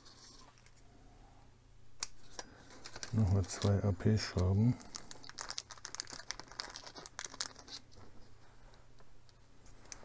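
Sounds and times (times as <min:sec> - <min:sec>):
plastic parts clicking and rustling: 0:02.0 - 0:08.2.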